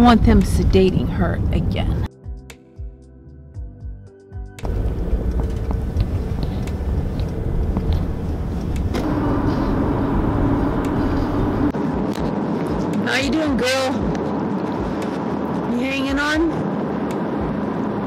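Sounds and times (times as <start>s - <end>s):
road and tyre rumble: 0.0s - 2.1s, 4.6s - 18.0s
soft music: 0.0s - 8.0s
steady hum: 4.6s - 18.0s.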